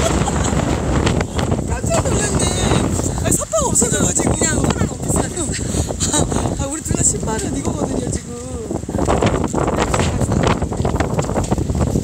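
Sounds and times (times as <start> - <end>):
strong wind buffeting microphone: 0.0 - 12.0.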